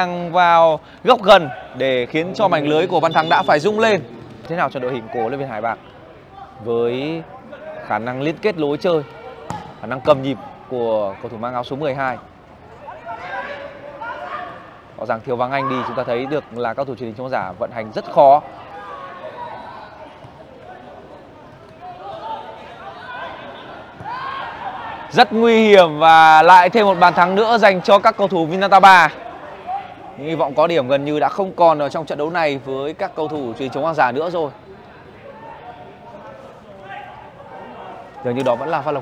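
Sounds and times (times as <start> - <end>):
players calling out: 0.0 - 39.0
distant players calling out: 1.2 - 4.2.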